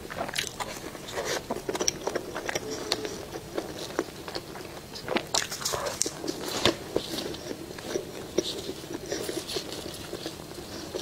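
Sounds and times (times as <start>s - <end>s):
biting and chewing food: 0.0s - 11.0s.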